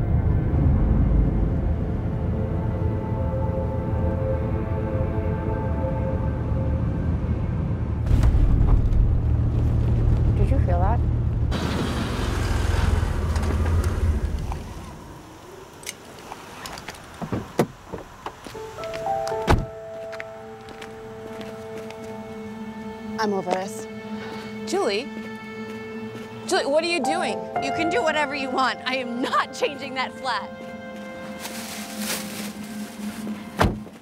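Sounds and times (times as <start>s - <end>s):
film score music: 0.0s - 11.6s, 18.5s - 34.0s
car road rumble: 7.6s - 19.7s
heavy thunk: 33.6s - 33.9s.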